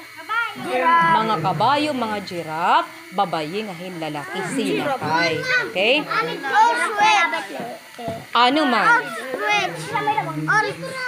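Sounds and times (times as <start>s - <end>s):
children talking and calling out: 0.0s - 2.3s, 4.1s - 11.0s.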